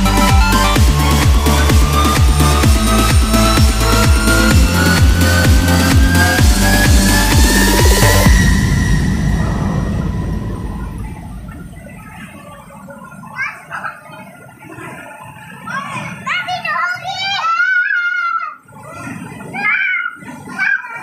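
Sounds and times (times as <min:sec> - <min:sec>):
electronic dance music: 0:00.0 - 0:12.5
children calling and chattering: 0:12.0 - 0:21.0.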